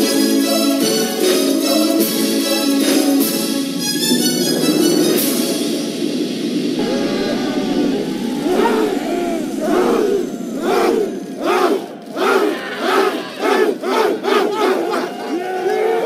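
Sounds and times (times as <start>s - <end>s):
young men shouting together: 6.8s - 16.0s.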